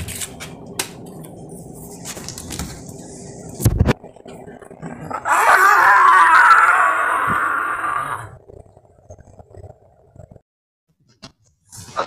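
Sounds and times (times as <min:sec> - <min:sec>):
loud drawn-out cry: 0:05.1 - 0:08.4.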